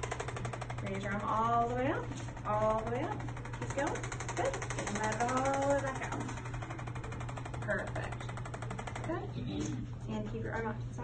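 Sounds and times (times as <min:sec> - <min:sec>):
electric percussion massager buzzing: 0:00.0 - 0:11.0.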